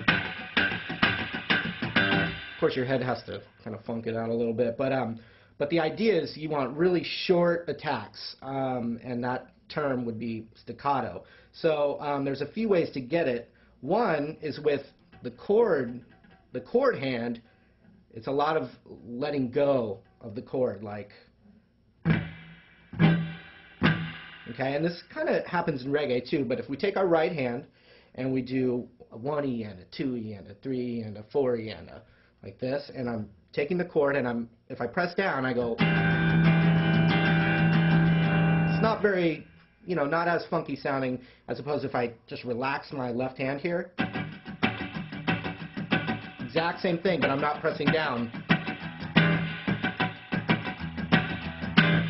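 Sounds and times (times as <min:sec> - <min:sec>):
electric guitar chord strummed: 0:00.0 - 0:02.7, 0:22.1 - 0:24.8, 0:35.7 - 0:39.1, 0:44.0 - 0:52.0.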